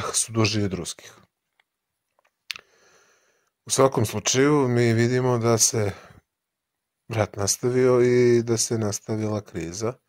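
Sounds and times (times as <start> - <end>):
man speaking: 0.0 - 1.3, 3.7 - 6.2, 7.1 - 10.0
mouth click lip smack: 2.5 - 2.7.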